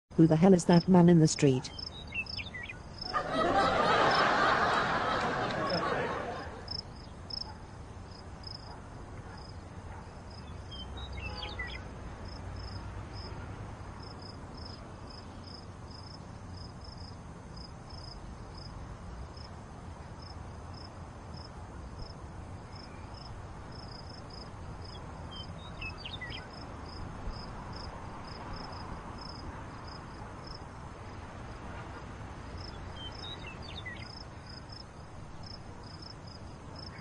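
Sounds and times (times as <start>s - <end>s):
low background noise: 0.1s - 37.0s
crickets chirping: 0.2s - 37.0s.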